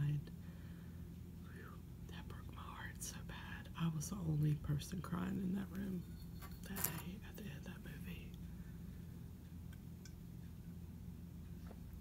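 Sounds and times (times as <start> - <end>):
faint low hum: 0.0 - 12.0
woman whispering: 1.5 - 6.0, 6.6 - 8.4.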